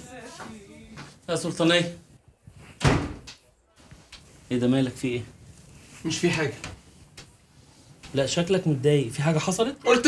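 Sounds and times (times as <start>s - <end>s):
door slamming shut: 2.8s - 3.3s.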